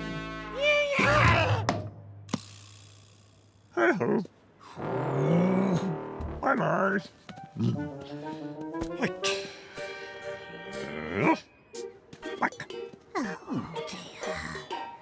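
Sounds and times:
background music: 0:00.0 - 0:01.9, 0:05.2 - 0:15.0
cartoon grunts and mumbles: 0:03.7 - 0:04.3, 0:10.7 - 0:11.5.

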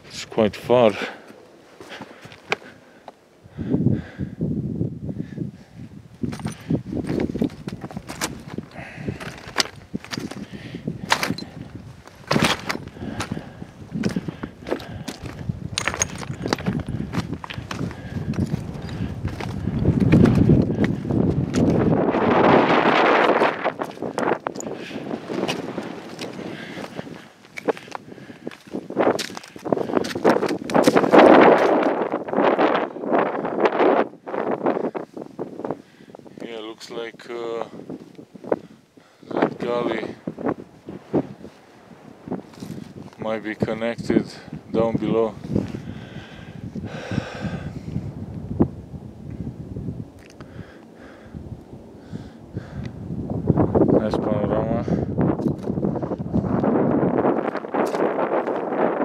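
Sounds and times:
wind gusting on microphone: 0:00.0 - 0:59.0
footsteps crunching on loose rock: 0:01.2 - 0:03.2, 0:06.2 - 0:21.9, 0:23.2 - 0:32.0, 0:42.3 - 0:43.7, 0:57.4 - 0:58.8.

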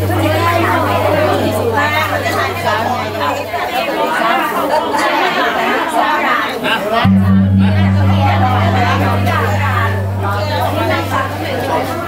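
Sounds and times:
low steady hum: 0:00.0 - 0:03.8, 0:07.1 - 0:12.0
crowd chatter in a hall: 0:00.0 - 0:12.0.

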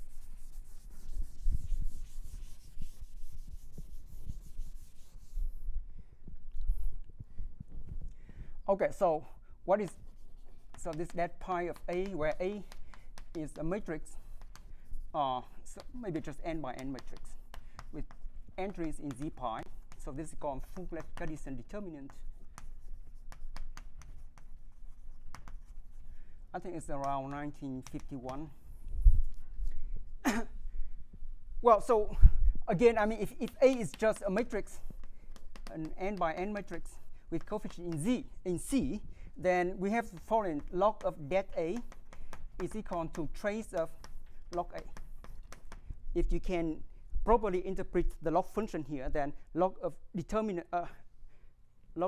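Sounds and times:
eraser wiping a chalkboard: 0:00.0 - 0:05.7, 0:08.8 - 0:29.6, 0:32.7 - 0:46.5.

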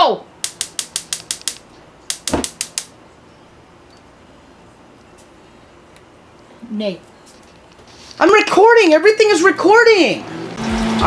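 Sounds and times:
rapid sharp clicks: 0:00.4 - 0:03.0.

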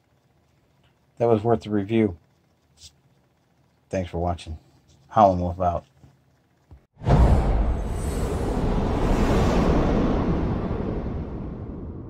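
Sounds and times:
deep rumbling roar: 0:07.0 - 0:12.0
sudden hit: 0:07.0 - 0:12.0.

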